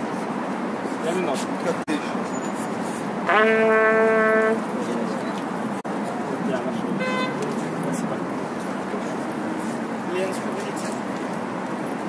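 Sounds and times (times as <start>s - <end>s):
city traffic: 0.0s - 12.0s
passers-by talking: 0.9s - 12.0s
short pitched toot: 7.0s - 7.4s.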